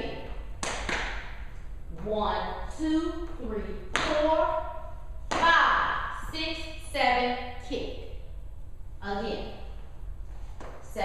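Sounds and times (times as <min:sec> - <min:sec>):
woman talking: 0:01.9 - 0:08.1, 0:09.0 - 0:09.7.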